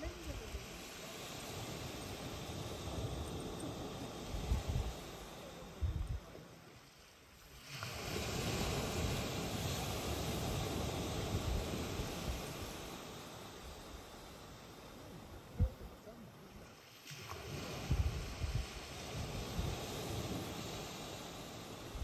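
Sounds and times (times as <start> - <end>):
wind buffeting microphone: 0.0 - 6.3, 17.4 - 22.0
sea surf: 0.0 - 22.0
wind: 0.0 - 22.0.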